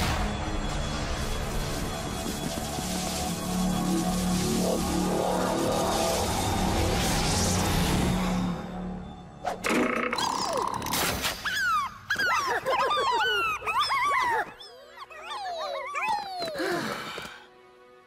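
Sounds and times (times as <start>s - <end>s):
dramatic music: 0.0s - 11.4s.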